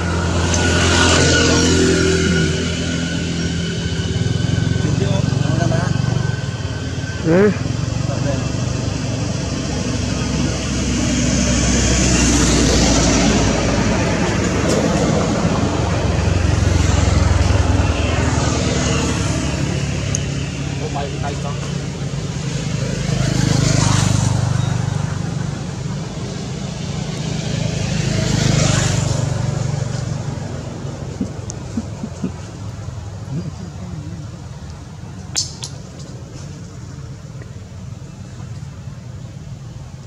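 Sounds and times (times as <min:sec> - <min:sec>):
road traffic rumble: 0:00.0 - 0:40.0.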